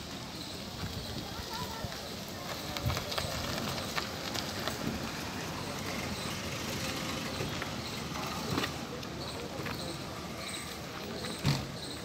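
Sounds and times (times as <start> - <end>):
car driving on gravel: 0.0 - 12.0
faint voices: 0.0 - 12.0.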